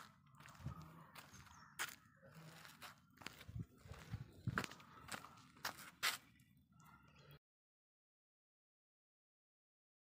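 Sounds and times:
faint footsteps on concrete: 0.0s - 6.5s.

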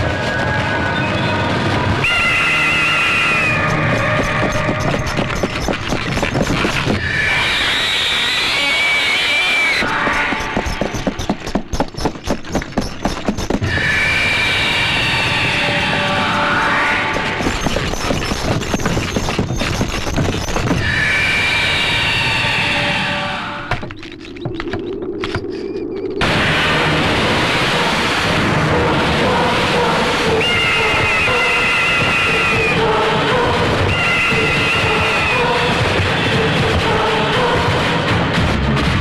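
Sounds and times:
film soundtrack music: 22.7s - 39.0s.

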